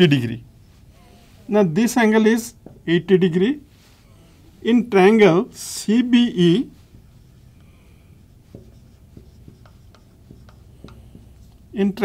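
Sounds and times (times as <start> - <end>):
marker writing on a whiteboard: 6.6 - 12.0.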